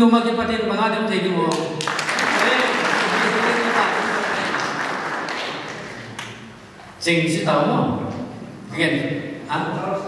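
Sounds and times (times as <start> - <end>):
audience applauding: 1.8 - 6.4.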